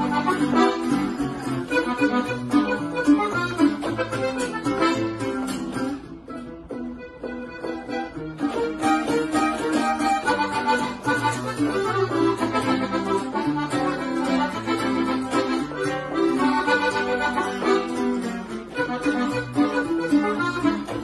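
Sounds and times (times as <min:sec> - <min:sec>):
button accordion lively melody: 0:00.0 - 0:21.0
guitar strumming chords and bass: 0:00.0 - 0:21.0.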